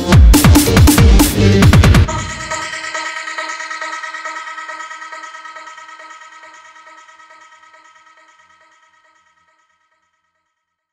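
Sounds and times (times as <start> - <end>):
electronic music chord pulsing: 2.0 - 9.8.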